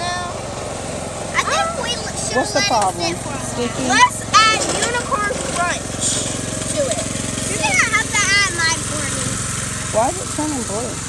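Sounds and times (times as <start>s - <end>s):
child's voice: 0.0s - 0.4s, 1.3s - 9.4s
small engine running: 0.0s - 11.0s.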